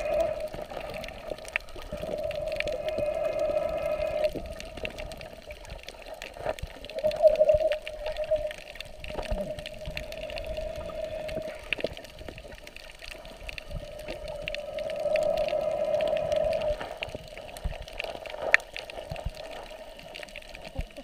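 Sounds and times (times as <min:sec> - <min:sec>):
water bubbling underwater: 0:00.0 - 0:21.0.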